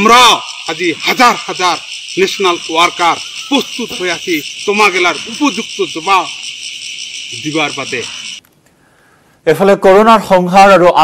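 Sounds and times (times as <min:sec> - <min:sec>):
man speaking: 0:00.0 - 0:06.5, 0:07.3 - 0:08.4
high-pitched insect drone: 0:00.0 - 0:08.4.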